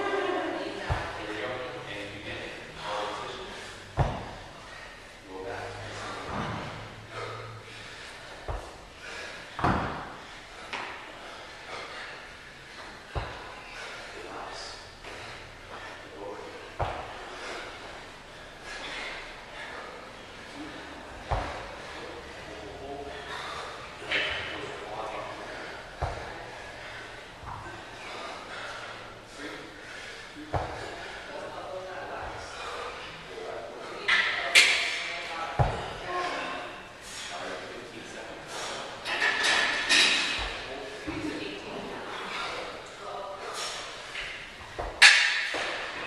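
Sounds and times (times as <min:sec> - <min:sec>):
indistinct voices in large room: 0:00.0 - 0:46.0
thuds on rubber floor: 0:09.6 - 0:10.1.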